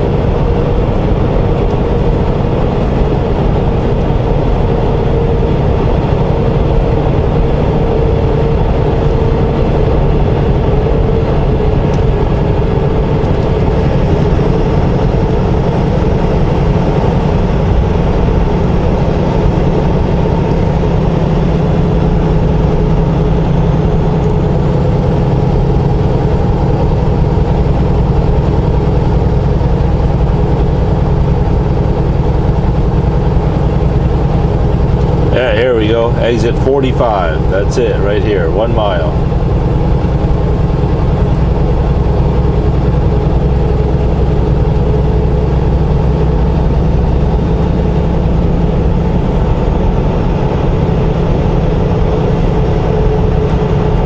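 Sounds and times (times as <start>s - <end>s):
truck diesel engine drone: 0.0s - 54.0s.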